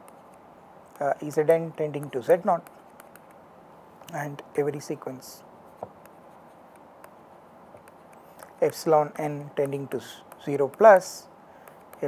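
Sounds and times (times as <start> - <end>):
soft clicks: 0.0 - 1.0, 1.9 - 3.4, 4.0 - 4.5, 5.8 - 12.0
steady low hiss: 0.0 - 12.0.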